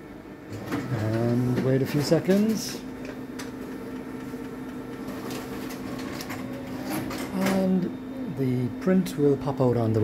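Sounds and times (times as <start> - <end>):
printer humming: 0.0 - 10.0.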